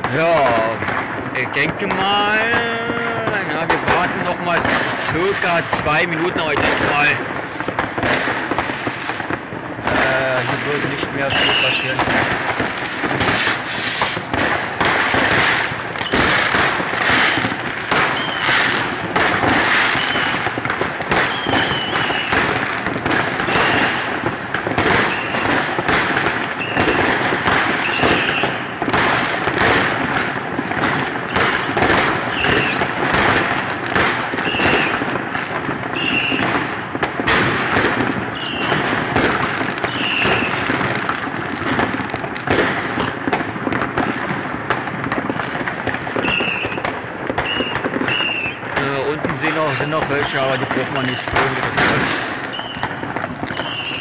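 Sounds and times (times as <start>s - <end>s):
fireworks bursting and crackling: 0.0s - 54.0s.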